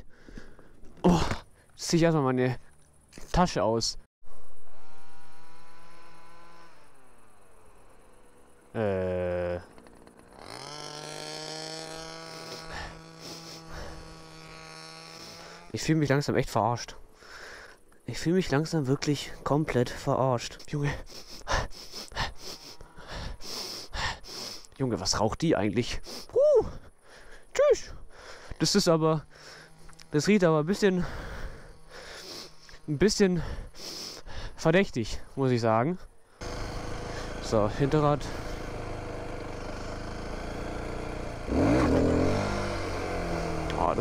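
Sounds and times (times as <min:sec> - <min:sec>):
man breathing hard: 0:00.0 - 0:00.9, 0:12.4 - 0:14.1, 0:17.1 - 0:17.9, 0:21.0 - 0:24.8, 0:26.0 - 0:28.6, 0:29.3 - 0:29.8, 0:31.0 - 0:32.8, 0:33.4 - 0:34.6
motorcycle engine revving: 0:04.6 - 0:16.2, 0:28.3 - 0:33.6, 0:36.4 - 0:44.0.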